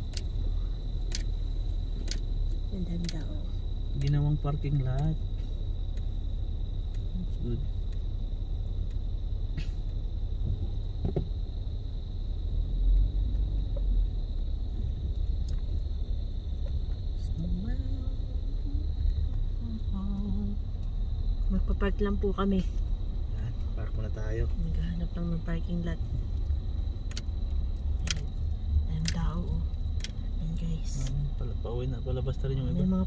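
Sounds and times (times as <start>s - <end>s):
car engine and tyres rumbling: 0.0s - 33.0s.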